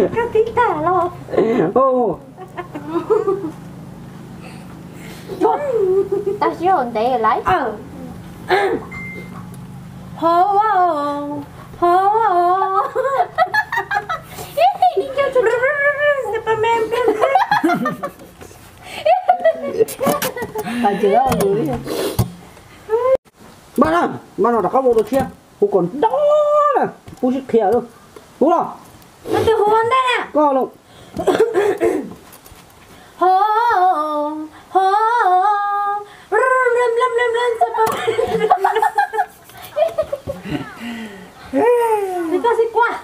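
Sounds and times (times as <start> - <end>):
steady low hum: 0.0 - 24.4.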